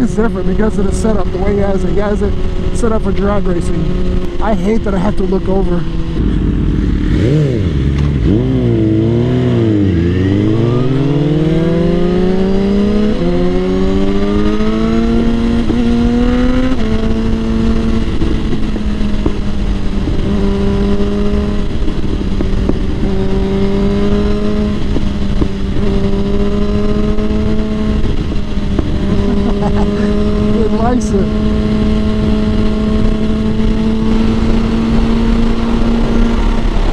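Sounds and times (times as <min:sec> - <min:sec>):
motorcycle engine revving: 0:00.0 - 0:36.9.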